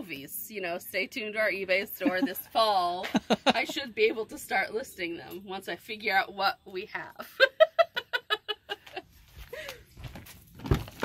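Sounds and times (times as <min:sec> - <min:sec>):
woman laughing: 0:02.0 - 0:04.0, 0:07.2 - 0:09.8.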